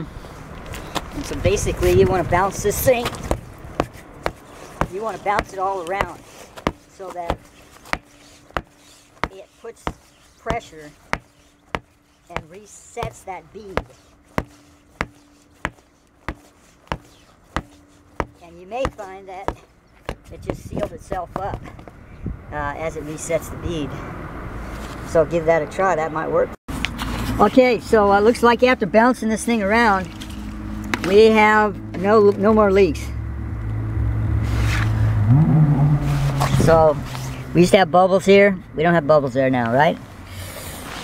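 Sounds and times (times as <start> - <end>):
vehicle engine humming: 0.0 - 41.0
tire thumping on the ground: 3.0 - 22.0.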